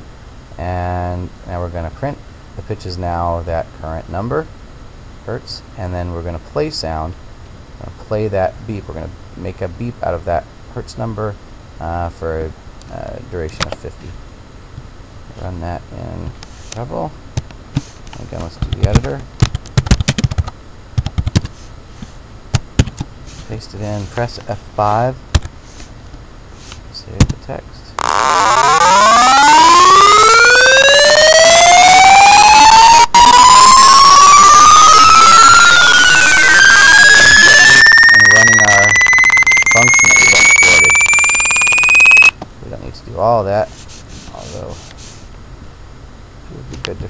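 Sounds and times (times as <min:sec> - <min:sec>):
rising computer beep tones: 0:28.0 - 0:42.3.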